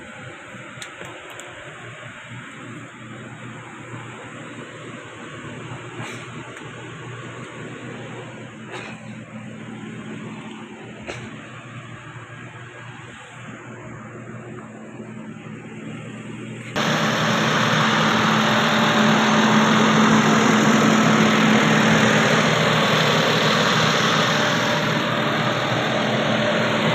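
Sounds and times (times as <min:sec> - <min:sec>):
van engine idling: 0:00.0 - 0:26.9
loud steady rushing noise: 0:16.8 - 0:26.9.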